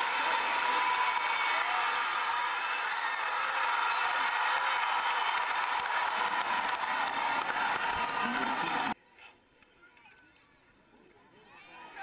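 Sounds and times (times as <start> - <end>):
stadium crowd cheering: 0.0 - 9.0.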